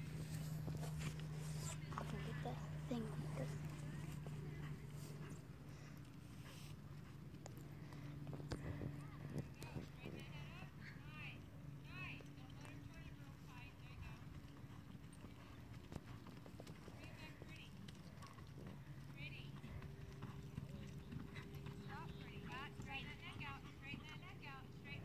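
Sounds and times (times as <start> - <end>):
horse hoofbeats on dirt: 0.0 - 25.0
steady low hum: 0.0 - 25.0.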